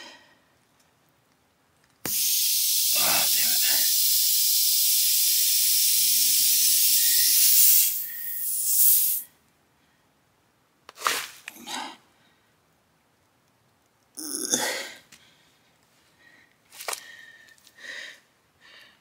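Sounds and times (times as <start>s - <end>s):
compressed air hissing from tire: 2.1s - 9.3s.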